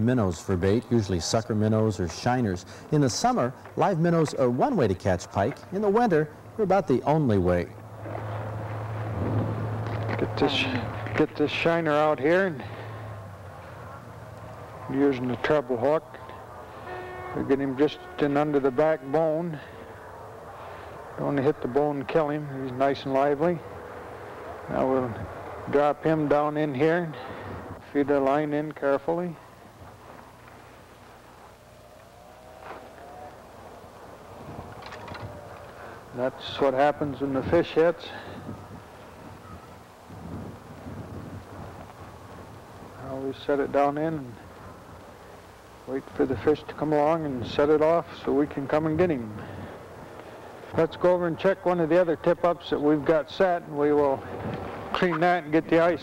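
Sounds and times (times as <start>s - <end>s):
distant engine whine: 0.0s - 56.0s
low steady hum: 0.0s - 56.0s
outdoor rushing noise: 0.0s - 56.0s.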